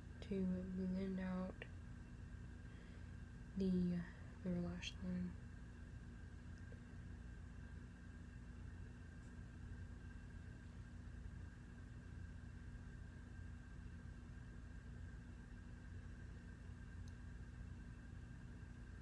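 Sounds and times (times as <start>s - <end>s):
faint steady tones: 0.0s - 19.0s
low hum: 0.0s - 19.0s.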